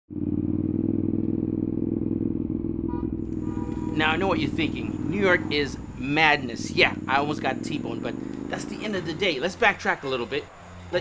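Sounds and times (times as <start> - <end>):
motorcycle engine running: 0.1 - 11.0.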